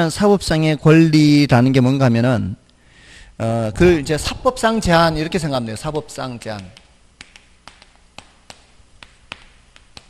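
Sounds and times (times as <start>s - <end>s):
faint room hiss: 0.0s - 10.0s
chalk tapping on chalkboard: 6.5s - 10.0s.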